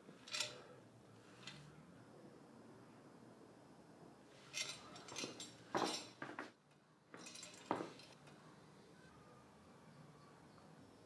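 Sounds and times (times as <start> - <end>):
metallic tools clinking: 0.2 - 0.6, 4.5 - 6.2, 7.2 - 8.2.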